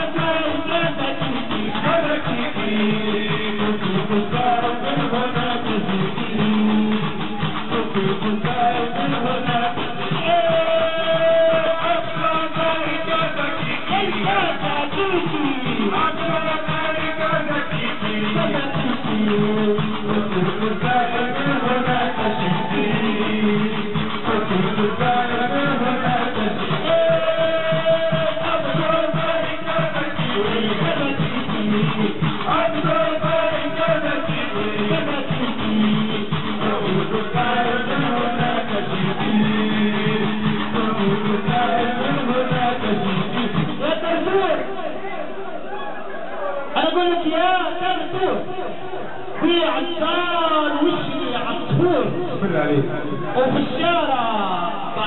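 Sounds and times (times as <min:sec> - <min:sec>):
group singing: 0:00.0 - 0:46.6.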